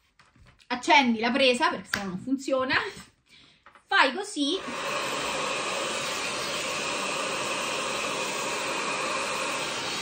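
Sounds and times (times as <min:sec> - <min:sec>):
hair styler fan whooshing: 0:04.6 - 0:10.0.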